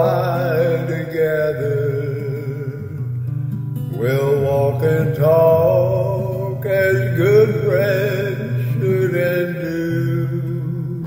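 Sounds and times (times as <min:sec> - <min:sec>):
man singing with vibrato: 0:00.0 - 0:03.2, 0:03.9 - 0:11.0.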